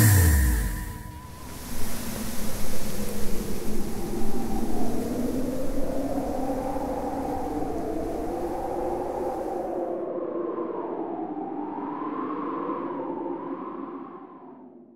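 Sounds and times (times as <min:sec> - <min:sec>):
wavering synth tones: 0:00.0 - 0:01.3
low rumble: 0:00.0 - 0:01.5
hiss-like noise wash: 0:00.0 - 0:09.8.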